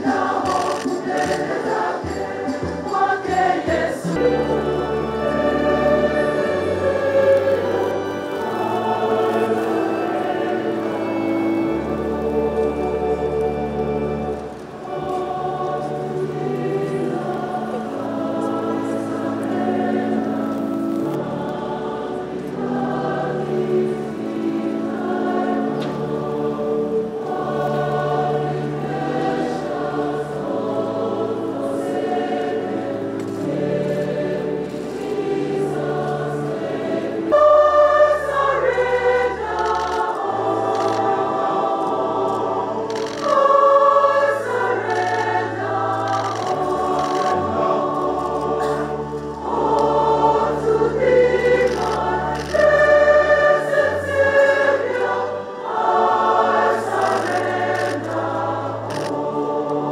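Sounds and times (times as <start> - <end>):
choir singing held chords: 0.0 - 59.9.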